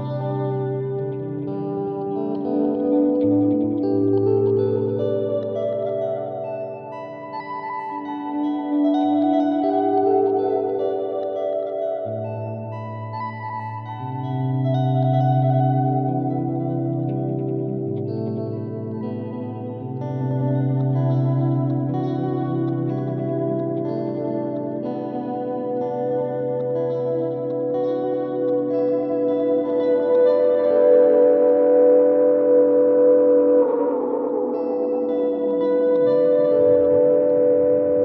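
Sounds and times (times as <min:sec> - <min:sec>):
electric guitar with echo delay: 0:00.0 - 0:38.0.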